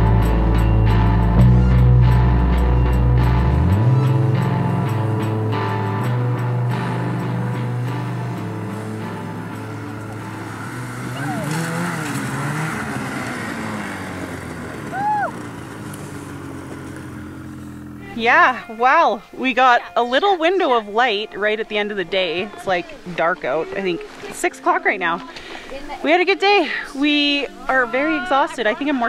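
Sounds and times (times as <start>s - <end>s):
rock music: 0.0s - 15.9s
snowmobile engines revving: 6.7s - 25.2s
rising and falling voice call: 11.0s - 11.8s, 14.9s - 15.5s.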